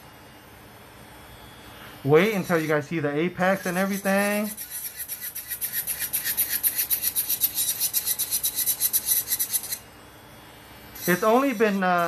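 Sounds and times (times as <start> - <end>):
electric nail drill grinding: 2.1 - 9.9, 10.9 - 12.0.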